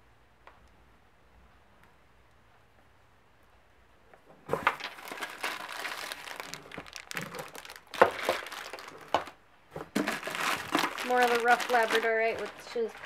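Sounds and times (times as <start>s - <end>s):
plastic packaging crinkling: 4.6s - 13.0s.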